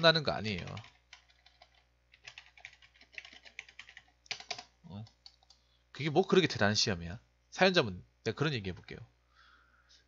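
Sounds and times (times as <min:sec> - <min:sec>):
computer keyboard typing: 0:00.4 - 0:05.6.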